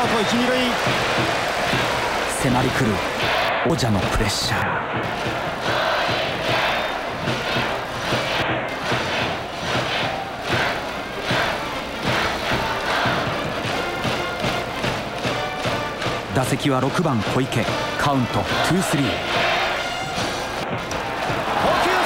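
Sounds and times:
music: 0.0 - 3.5, 4.8 - 22.0
stadium crowd cheering and chanting: 0.0 - 22.0.

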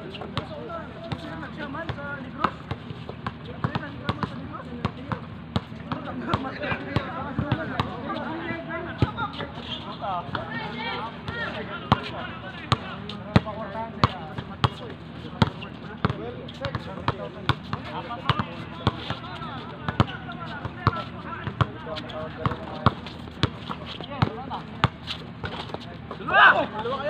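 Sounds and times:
players' voices: 0.0 - 27.0
basketball bouncing on court: 1.1 - 8.0, 12.7 - 14.8, 15.4 - 19.2, 19.9 - 21.7, 22.4 - 26.2.

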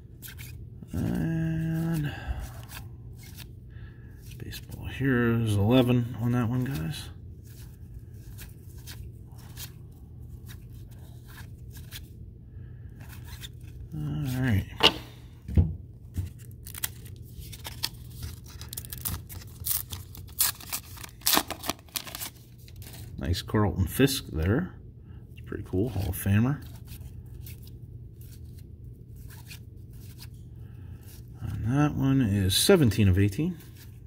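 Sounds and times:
cards rustling: 0.2 - 12.2, 12.9 - 15.2, 16.0 - 23.2, 25.7 - 31.3
foil pack tearing and crinkling: 16.3 - 23.0.

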